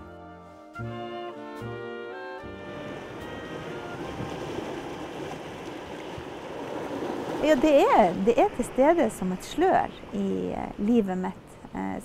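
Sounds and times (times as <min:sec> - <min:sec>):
music: 0:00.0 - 0:04.9
sea waves breaking on rocks: 0:02.7 - 0:11.0.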